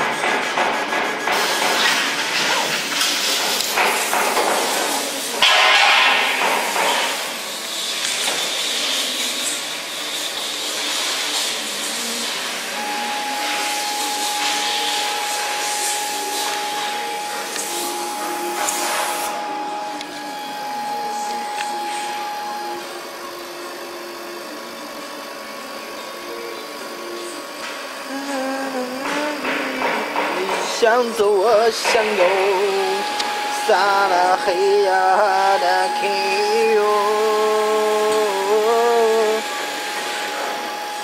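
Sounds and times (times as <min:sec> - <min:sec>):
laser cutter hissing: 0:00.0 - 0:41.0
high whine: 0:05.3 - 0:09.6, 0:11.7 - 0:41.0.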